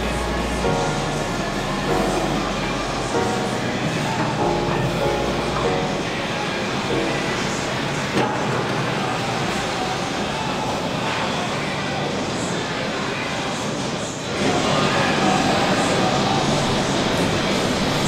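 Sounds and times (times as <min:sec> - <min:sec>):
instrumental music with deep bass: 0:00.0 - 0:08.1.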